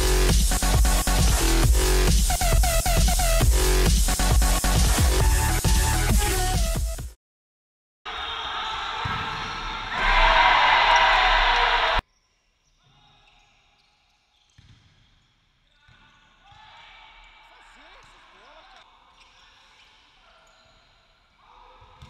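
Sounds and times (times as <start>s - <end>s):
loud crowd noise in arena: 8.1s - 12.0s.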